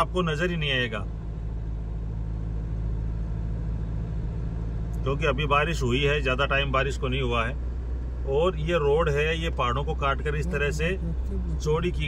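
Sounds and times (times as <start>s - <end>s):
car engine and tyres droning: 0.0s - 12.0s.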